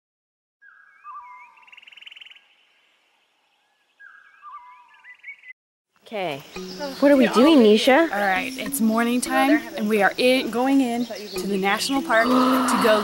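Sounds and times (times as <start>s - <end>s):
birds calling with whistles and trills: 0.6s - 5.6s, 6.2s - 13.0s.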